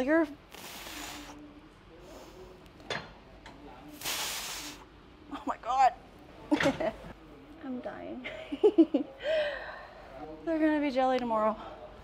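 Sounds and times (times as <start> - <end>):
woman breathing hard: 9.2 - 10.0.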